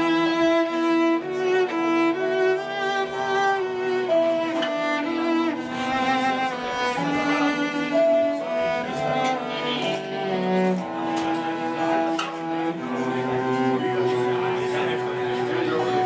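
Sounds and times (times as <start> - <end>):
cello bowed slow melody: 0.0 - 16.0.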